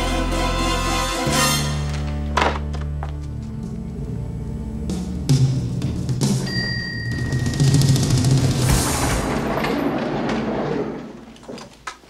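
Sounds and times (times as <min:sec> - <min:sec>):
gurney wheels rumbling and rattling: 0:07.2 - 0:12.0.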